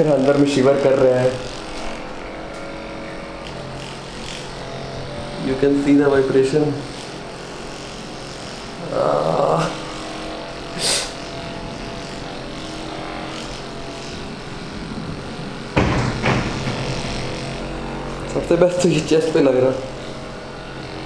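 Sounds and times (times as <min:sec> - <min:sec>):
massage gun motor hum: 0:00.0 - 0:21.0.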